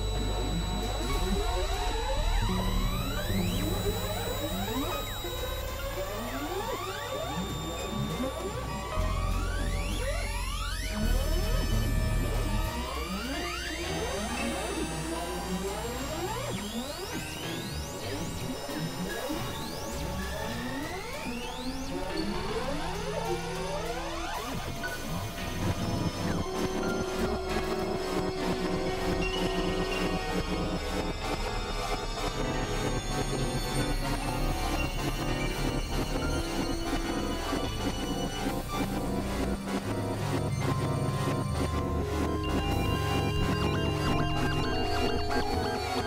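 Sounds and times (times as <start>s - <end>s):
high rising synth sweep: 0.0s - 8.4s, 25.7s - 33.0s
steady high synth tones: 0.0s - 15.1s, 21.6s - 46.0s
low droning synth bass: 0.0s - 16.1s, 21.8s - 46.0s
gliding synthesizer tones: 0.0s - 46.0s.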